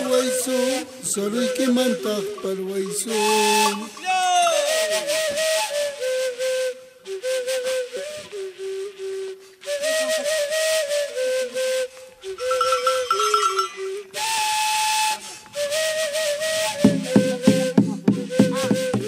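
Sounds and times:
breathy flute melody: 0:00.0 - 0:19.0.

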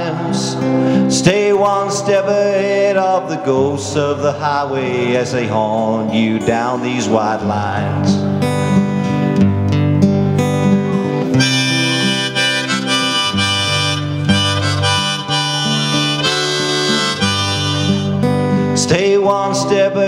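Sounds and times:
strummed acoustic guitar: 0:00.0 - 0:20.0
harmonica solo: 0:11.2 - 0:18.6.

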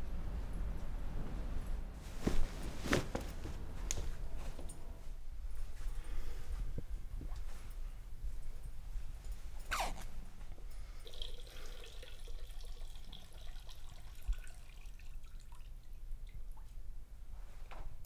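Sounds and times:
low steady hum: 0:00.0 - 0:18.0
water trickling and dripping: 0:10.8 - 0:16.8.

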